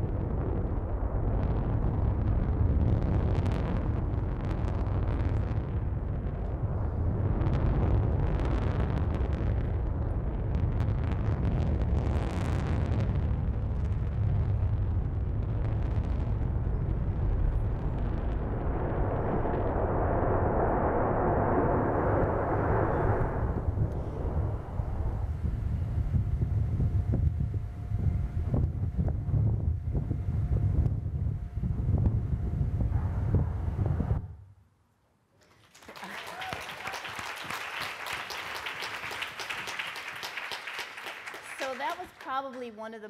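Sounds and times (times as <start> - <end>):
rocket engine roaring over loudspeakers: 14.9 - 34.3.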